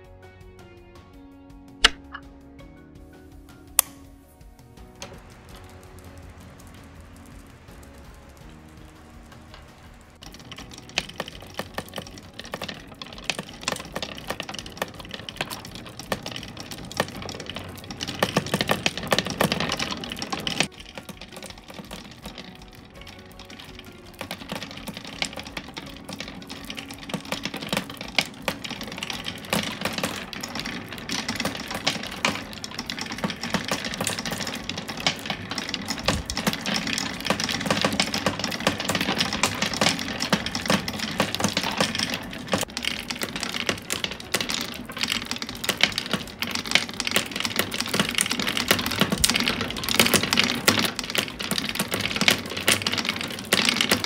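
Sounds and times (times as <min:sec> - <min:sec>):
marbles rolling in wooden bowl: 0:01.8 - 0:02.3, 0:03.3 - 0:54.0
glass marbles clicking and rattling: 0:04.8 - 0:54.0.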